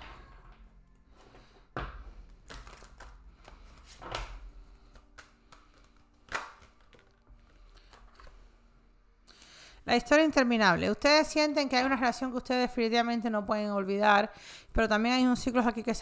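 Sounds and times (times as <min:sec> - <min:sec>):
faint music: 0:00.0 - 0:16.0
cards being shuffled: 0:02.2 - 0:08.4.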